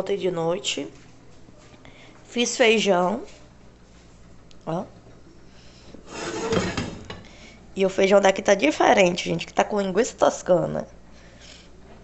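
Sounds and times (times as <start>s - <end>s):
pot scraping on stove: 6.0s - 7.2s.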